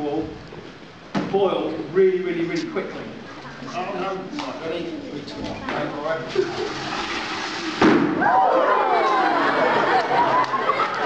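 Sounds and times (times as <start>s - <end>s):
excited audience voices: 6.1s - 11.0s.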